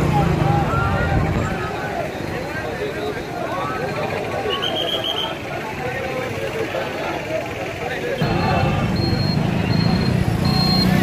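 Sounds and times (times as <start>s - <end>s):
faint high-pitched beep: 8.2s - 11.0s.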